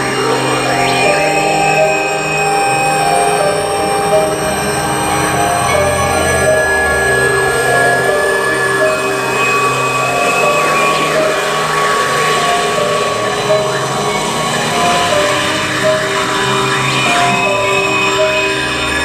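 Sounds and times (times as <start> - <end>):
dense droning noise: 0.0 - 19.0
held electronic tones: 0.0 - 19.0.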